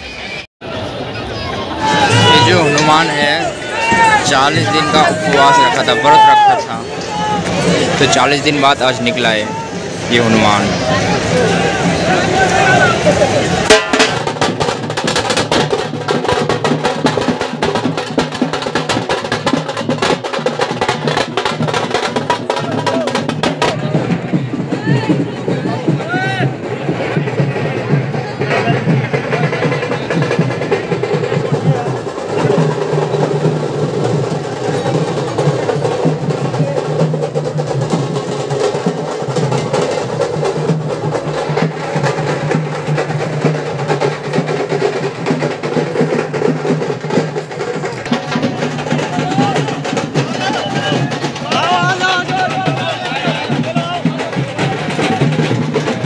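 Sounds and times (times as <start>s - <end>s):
large crowd voices: 0.0s - 56.0s
drum band playing fast rolls: 1.4s - 56.0s.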